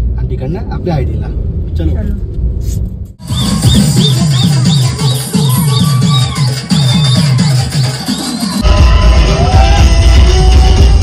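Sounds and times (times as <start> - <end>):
high chirping synth: 3.2 - 8.6
electronic dance music: 3.2 - 11.0.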